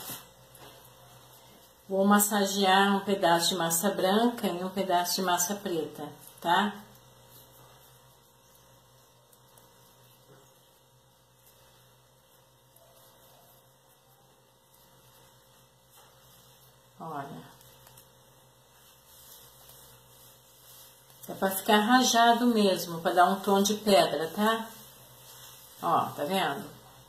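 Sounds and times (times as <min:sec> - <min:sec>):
low electrical hum: 0:00.0 - 0:27.0.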